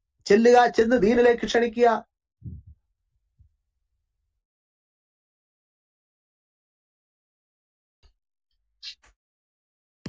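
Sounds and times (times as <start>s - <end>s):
faint low thump: 2.4s - 2.8s.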